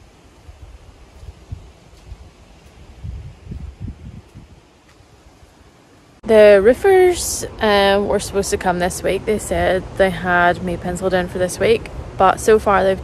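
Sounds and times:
wind buffeting microphone: 0.0 - 5.6
faint outdoor hiss: 0.0 - 13.0.

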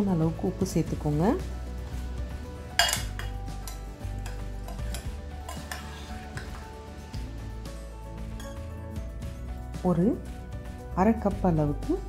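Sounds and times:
spoon clinking in glass bowl: 2.8 - 6.6, 8.3 - 8.6.

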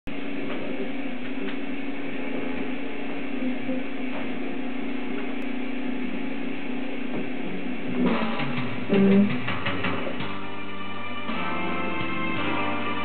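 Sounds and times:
steady hum with hiss: 0.1 - 13.0.

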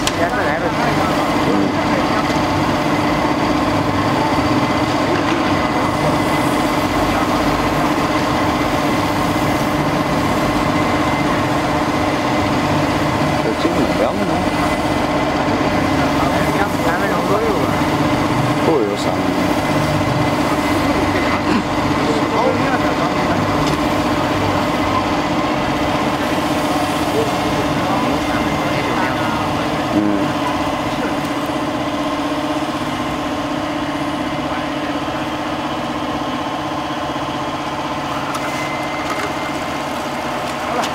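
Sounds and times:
people talking: 0.0 - 31.7, 33.8 - 37.1, 38.1 - 40.9
ride machinery hum and whine: 0.0 - 40.9.

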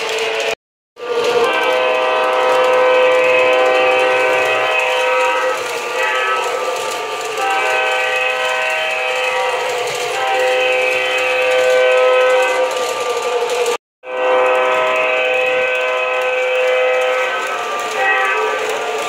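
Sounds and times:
model train air horn blasts: 0.0 - 13.3, 14.0 - 19.0.

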